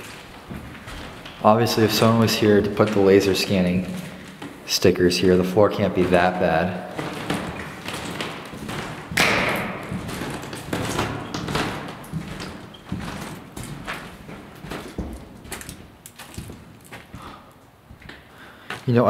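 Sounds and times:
footsteps on wooden floor: 0.0s - 4.7s, 5.4s - 18.9s.

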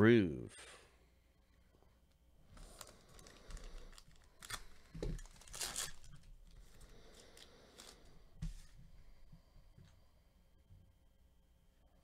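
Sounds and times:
foil wrapper crinkling and ripping: 2.5s - 8.1s.

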